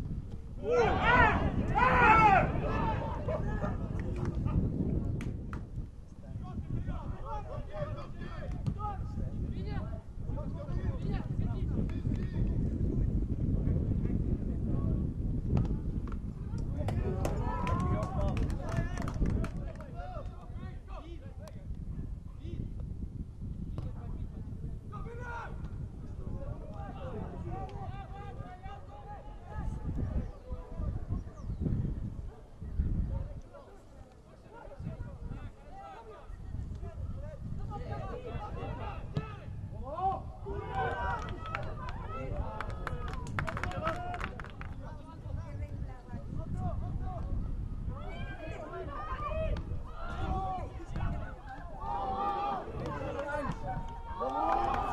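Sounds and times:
players shouting: 0.6 - 3.8, 47.9 - 54.9.

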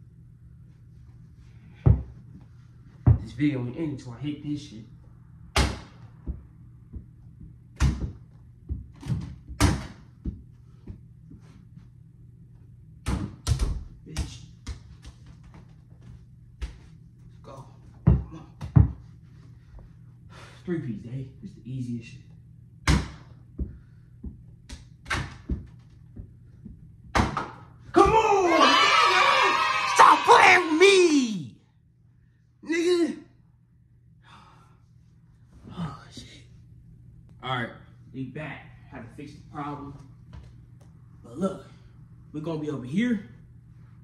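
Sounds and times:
balls bouncing on carpet: 1.8 - 2.4, 3.0 - 3.3, 5.6 - 11.5, 18.0 - 19.1, 22.9 - 28.2
balls knocking on hoop and door: 5.6 - 10.5, 18.0 - 19.0, 22.8 - 28.2
balls hitting plastic hoop: 27.1 - 28.2.

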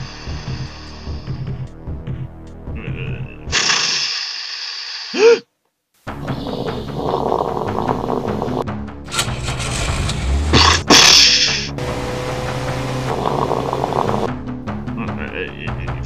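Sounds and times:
orchestral cartoon music: 6.1 - 16.0.

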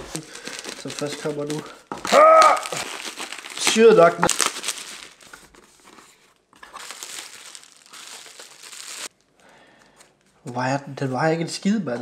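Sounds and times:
bubble wrap crinkling: 0.0 - 9.6.

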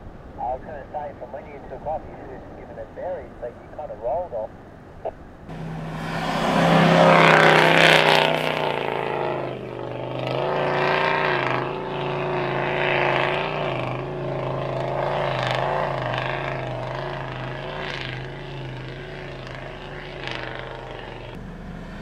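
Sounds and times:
engine at full throttle: 5.5 - 22.0.

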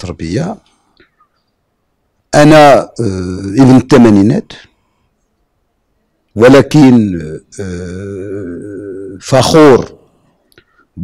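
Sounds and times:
man speaking: 0.0 - 0.7, 2.3 - 4.7, 6.4 - 10.1.

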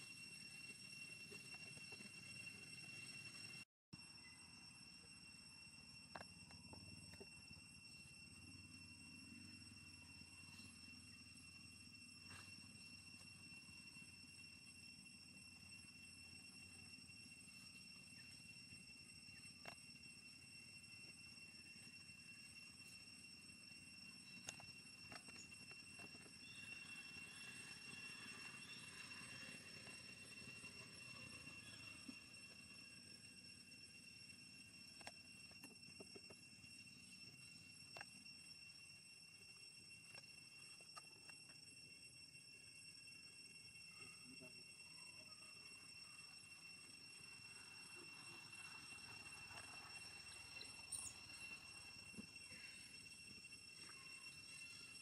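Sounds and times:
steady high-pitched tone: 0.0 - 55.0.

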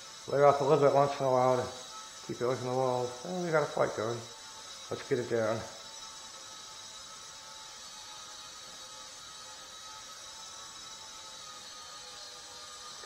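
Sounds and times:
small propeller motor whine: 0.0 - 13.0.

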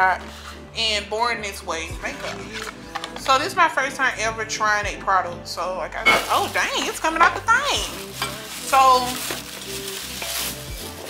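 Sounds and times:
plastic bag rustling: 6.1 - 11.0.

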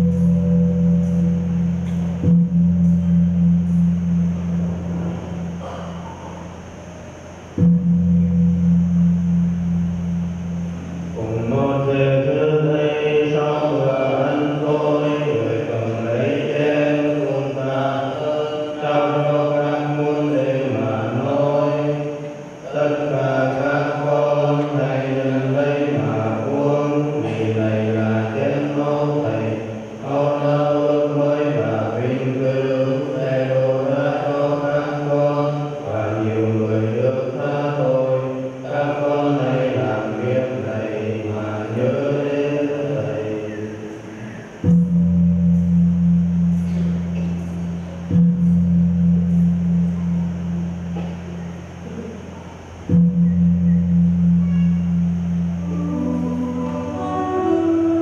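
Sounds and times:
low ringing gong or bell: 0.0 - 29.2, 44.6 - 52.1, 52.9 - 58.0
slow chanted singing: 0.0 - 58.0.

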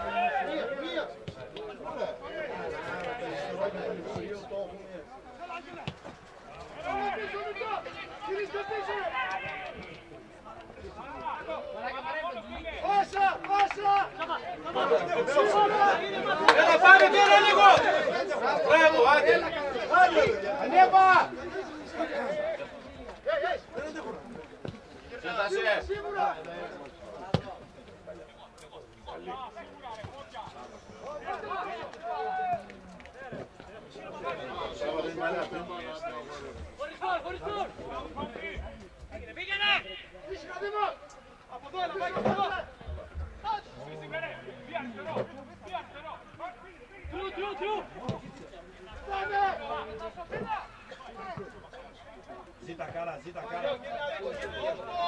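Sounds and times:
background hubbub of talk: 0.0 - 55.0
people calling out and chattering: 0.0 - 55.0.

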